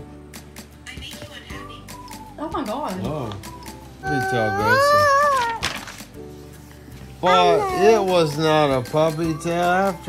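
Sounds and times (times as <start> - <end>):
book page turning: 4.8 - 7.2.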